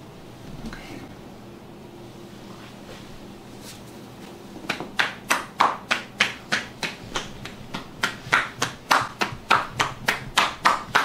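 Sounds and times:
hands slapping a back: 4.6 - 11.0.

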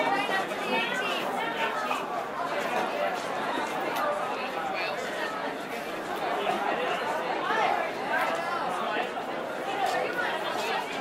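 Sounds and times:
babble of chatter: 0.0 - 11.0.

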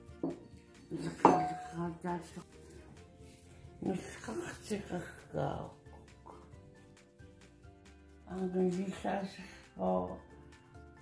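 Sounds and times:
bowl clinking on table: 1.0 - 1.8.

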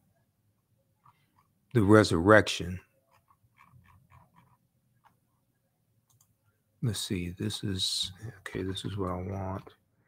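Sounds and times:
computer keyboard and mouse clicks: 3.1 - 5.2, 6.1 - 6.3.

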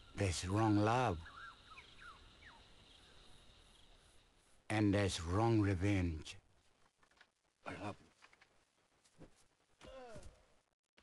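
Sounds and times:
falling bird chirps: 0.0 - 4.6
high insect drone: 0.0 - 6.5.

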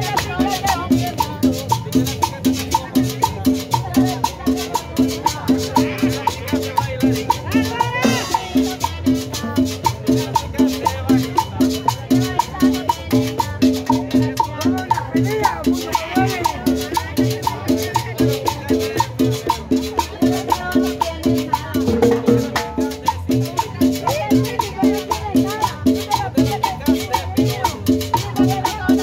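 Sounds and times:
hand drums: 0.0 - 29.0
salsa band music: 0.0 - 29.0.

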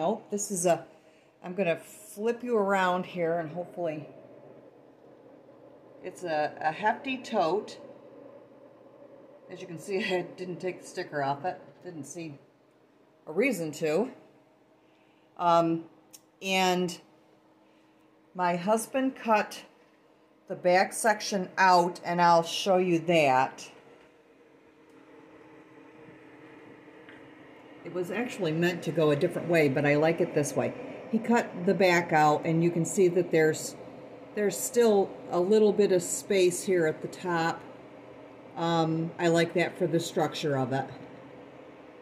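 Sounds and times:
low background hum: 0.0 - 42.0.

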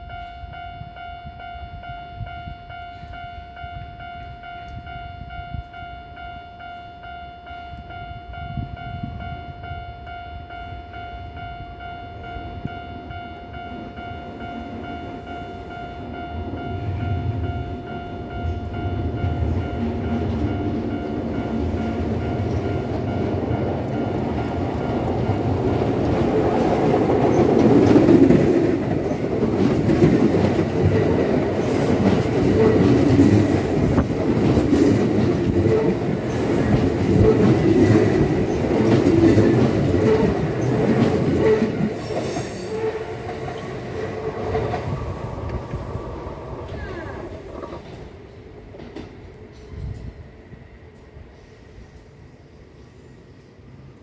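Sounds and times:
train rumble: 0.0 - 54.0
train wheels clattering: 21.8 - 46.0.

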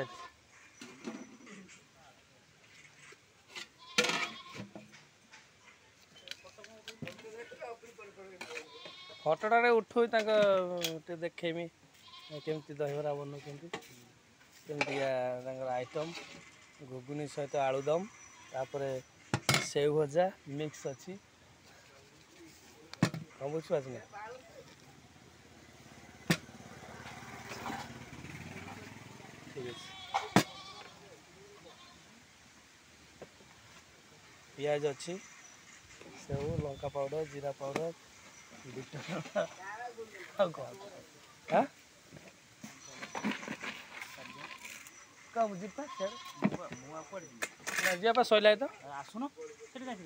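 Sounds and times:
goat bleating: 0.0 - 0.4, 3.8 - 4.7, 8.5 - 9.4, 11.9 - 12.8, 29.5 - 32.2, 44.0 - 44.7, 45.6 - 47.0.

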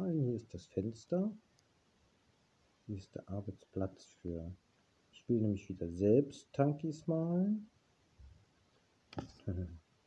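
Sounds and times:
man's short wordless vocal sound: 9.4 - 9.8.

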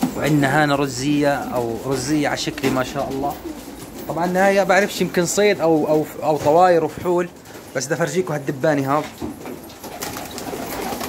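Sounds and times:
pigeons cooing: 0.0 - 11.0.

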